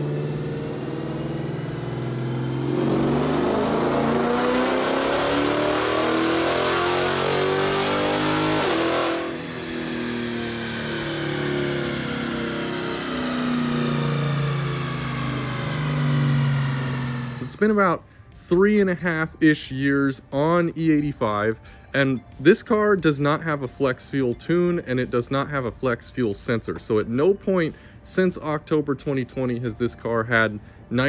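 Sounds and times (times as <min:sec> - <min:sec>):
car engine revving on dyno: 0:00.0 - 0:17.6.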